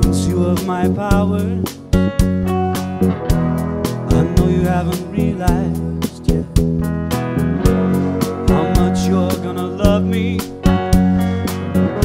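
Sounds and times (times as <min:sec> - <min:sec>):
drum kit beat: 0:00.0 - 0:12.0
live band playing: 0:00.0 - 0:12.0.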